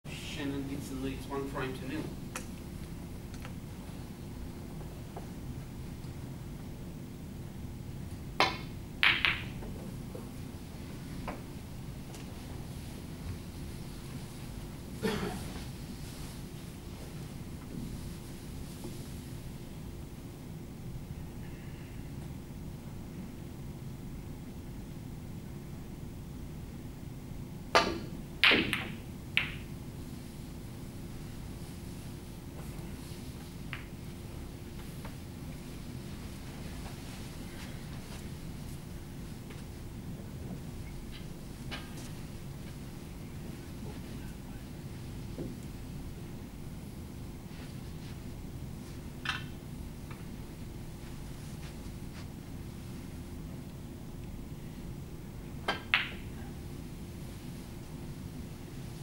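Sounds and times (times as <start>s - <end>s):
low room hum: 0.0s - 59.0s
snooker balls clicking: 8.4s - 10.3s, 27.8s - 29.8s, 33.6s - 34.1s, 49.2s - 50.3s, 55.6s - 56.3s.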